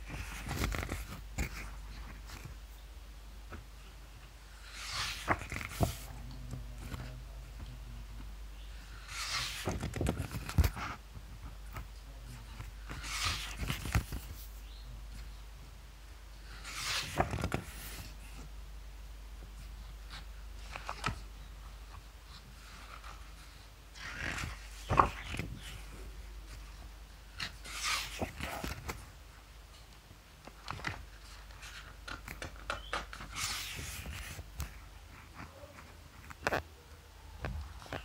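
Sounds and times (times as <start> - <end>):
paper page rustling: 0.0 - 2.6, 4.6 - 6.1, 8.9 - 15.3, 16.5 - 18.5, 19.6 - 21.3, 21.9 - 29.1, 30.5 - 36.6
page flapping over: 0.1 - 2.5, 4.7 - 6.1, 9.1 - 11.0, 12.6 - 14.5, 16.6 - 18.1, 24.0 - 25.9, 27.4 - 29.1, 30.6 - 34.8
paper page swish: 4.6 - 6.1, 12.9 - 14.5
page slapping down: 4.8 - 6.1, 9.1 - 11.0, 16.7 - 18.0, 24.0 - 25.8.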